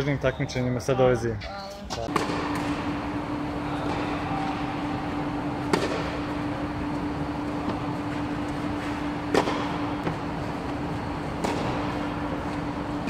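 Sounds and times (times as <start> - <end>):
steady low hum: 2.0 - 13.0
racket hitting tennis ball: 2.1 - 12.9.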